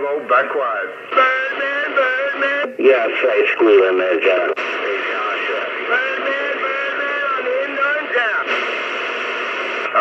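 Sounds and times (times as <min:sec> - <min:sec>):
man talking over two-way radio: 0:00.0 - 0:08.6
radio static hiss: 0:00.0 - 0:10.0.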